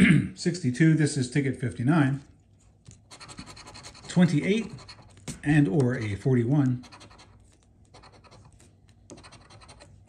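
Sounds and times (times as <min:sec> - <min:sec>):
coin scraping scratch card: 0:03.0 - 0:10.0.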